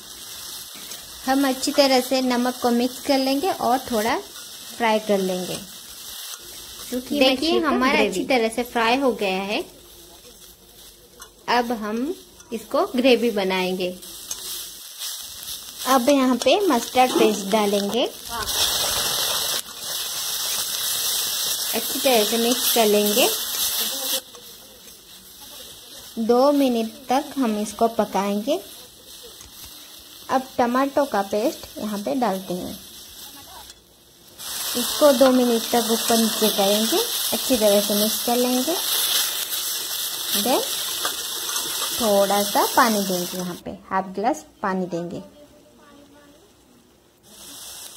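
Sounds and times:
paste sizzling in hot oil: 0.0 - 43.7, 47.2 - 47.9
spatula stirring: 9.7 - 30.0, 31.4 - 42.9.

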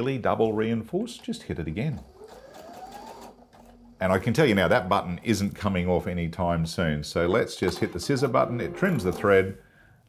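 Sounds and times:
sewing machine sewing: 0.6 - 5.1, 7.6 - 9.5.

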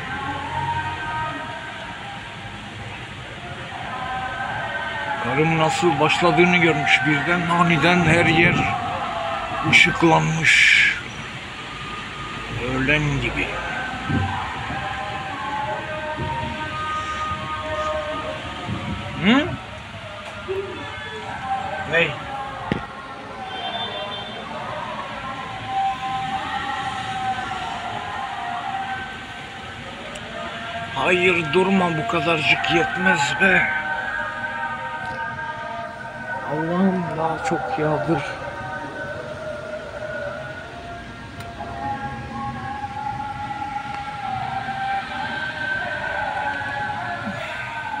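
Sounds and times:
heavy rain falling: 0.0 - 23.4.

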